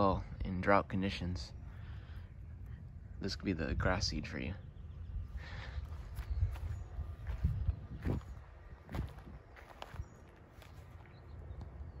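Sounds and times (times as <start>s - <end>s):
low rumble on microphone: 1.3s - 10.0s
footsteps on a lawn: 5.9s - 11.3s.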